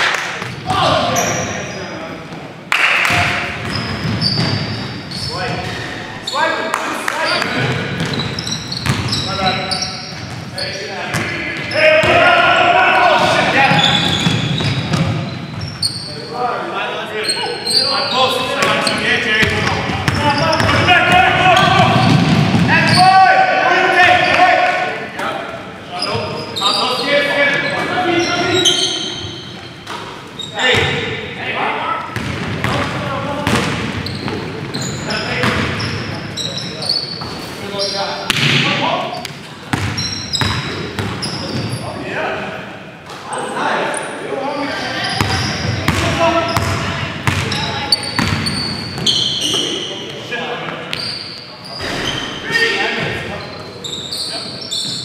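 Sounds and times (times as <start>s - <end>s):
sneaker squeaks: 0.4s - 2.0s, 3.0s - 23.2s, 25.9s - 31.2s, 32.0s - 42.0s, 43.3s - 50.2s, 50.8s - 55.0s
players shouting: 10.7s - 14.4s, 17.2s - 25.3s.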